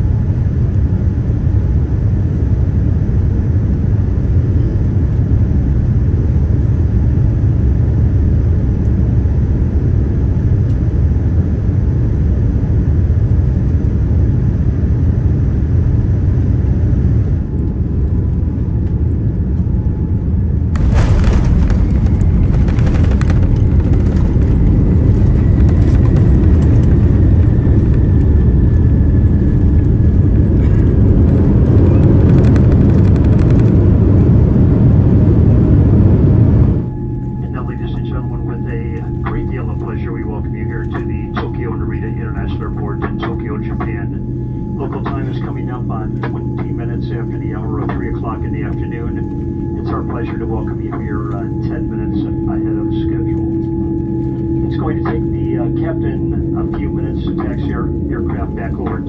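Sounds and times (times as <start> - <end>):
rattling roar on runway: 0.0 - 39.6
jet engine and airflow rumble: 0.0 - 59.0
faint falling whine: 17.2 - 59.0.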